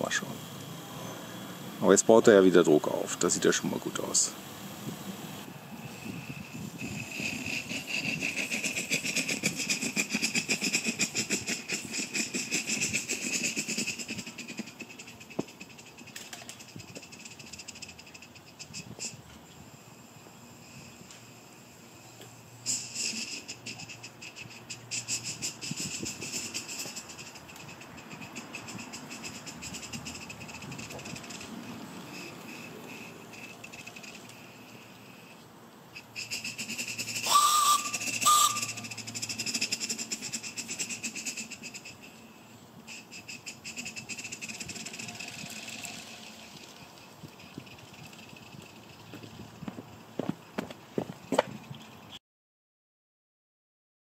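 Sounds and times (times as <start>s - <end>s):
steam locomotive hiss and exhaust: 0.0s - 51.2s.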